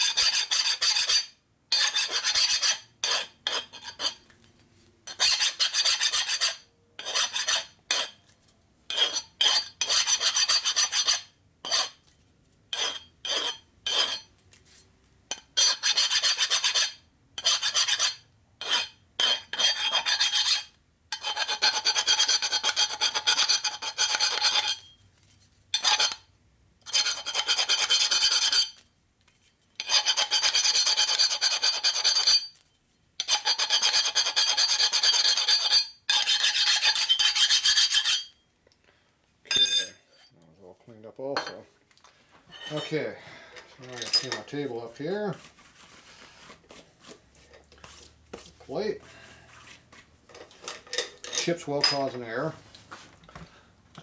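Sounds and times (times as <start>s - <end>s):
file rasping on metal tube: 0.0s - 4.2s, 5.1s - 8.2s, 8.9s - 12.0s, 12.7s - 14.3s, 15.3s - 24.9s, 25.8s - 28.8s, 29.8s - 32.5s, 33.2s - 38.3s.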